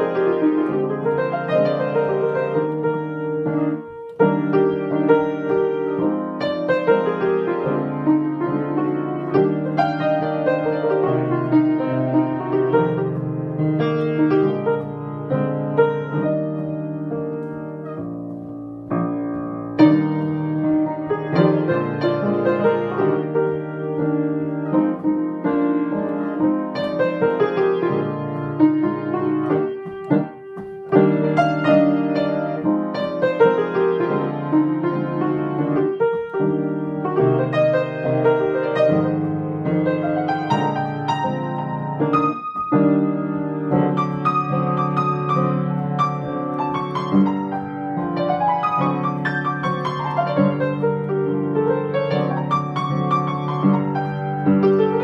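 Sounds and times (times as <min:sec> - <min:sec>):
solo piano playing: 0:00.0 - 0:55.0.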